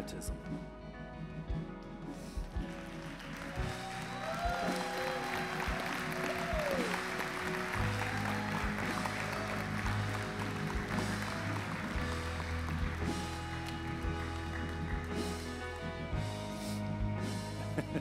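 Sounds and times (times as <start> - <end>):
live band playing softly: 0.0 - 18.0
crowd applauding and cheering: 2.4 - 18.0
whoops: 3.5 - 10.0.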